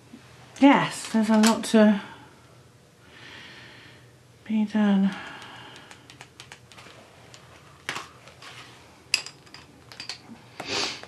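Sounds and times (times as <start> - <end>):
coloured pencils clicking: 5.1 - 8.0.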